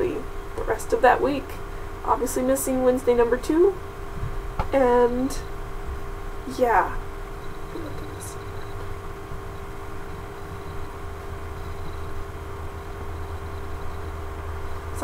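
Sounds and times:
faint constant tone: 0.0s - 15.0s
room noise: 0.0s - 15.0s
steady low hum: 0.0s - 15.0s.

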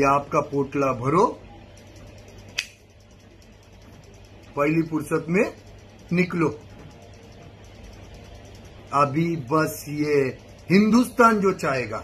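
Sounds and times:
low room hum: 0.0s - 12.0s
sharp click: 2.5s - 2.9s.

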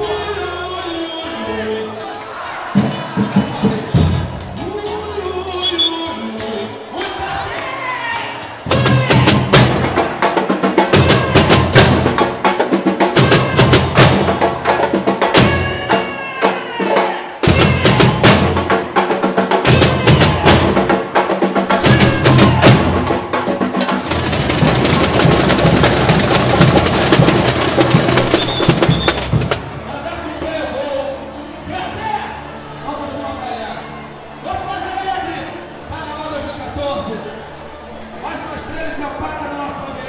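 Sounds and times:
samba drum section playing: 2.7s - 5.1s, 8.4s - 30.5s
snare drums: 2.8s - 4.7s, 8.6s - 29.9s
surdo bass drums: 17.4s - 29.9s.

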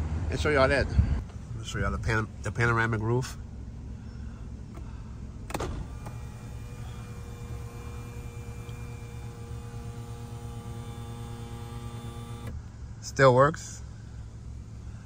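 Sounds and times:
roof motor whine: 4.3s - 12.8s
sunroof click: 5.5s - 12.6s.

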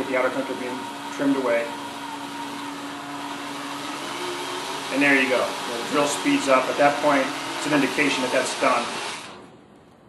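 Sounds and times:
cordless drill running: 0.0s - 9.5s.

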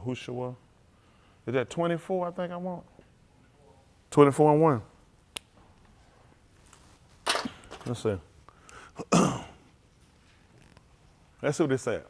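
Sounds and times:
man coughing: 9.0s - 9.6s.

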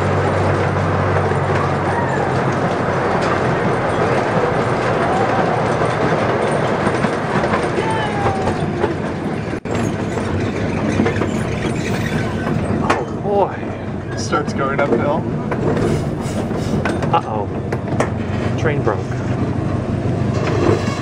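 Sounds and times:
train car rumbling on track: 0.0s - 21.0s.

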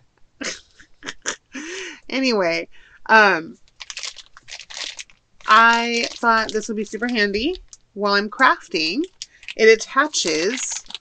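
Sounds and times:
woman laughing: 0.4s - 2.1s.

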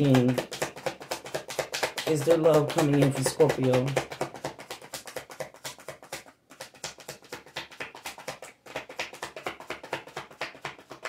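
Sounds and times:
cards being shuffled by hand: 0.0s - 11.0s.

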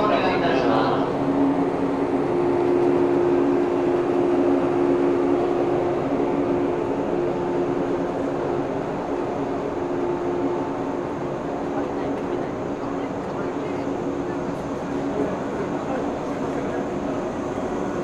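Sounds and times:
electric train running hum: 0.0s - 18.0s.

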